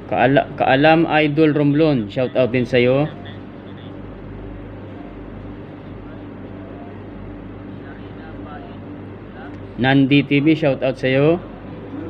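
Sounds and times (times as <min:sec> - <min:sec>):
constant low hum: 0:00.0 - 0:12.0
faint indistinct voices: 0:03.1 - 0:09.8.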